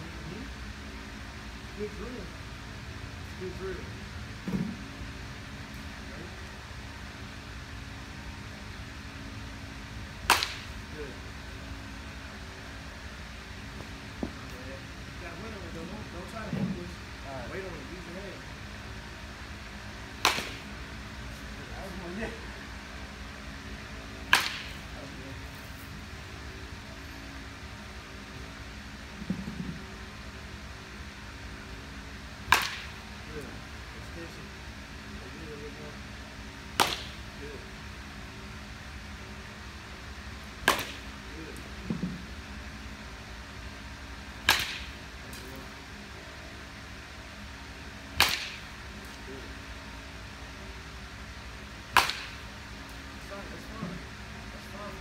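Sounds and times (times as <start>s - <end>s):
steady low hum: 0.0s - 55.0s
baseball bat striking ball: 10.2s - 10.8s, 20.2s - 20.7s, 24.3s - 24.8s, 32.4s - 33.0s, 36.7s - 37.2s, 40.6s - 41.1s, 44.4s - 45.0s, 48.2s - 48.8s, 51.9s - 52.5s.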